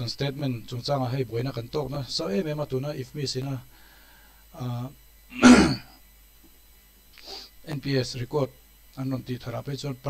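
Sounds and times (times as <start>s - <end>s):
man clearing throat: 5.3s - 6.0s.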